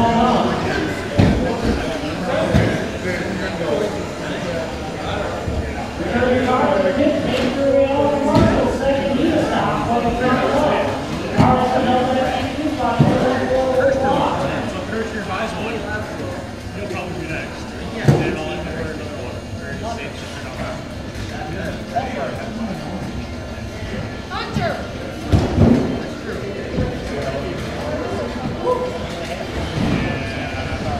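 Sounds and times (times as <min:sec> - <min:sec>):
indistinct chatter echoing in hall: 0:00.0 - 0:30.9.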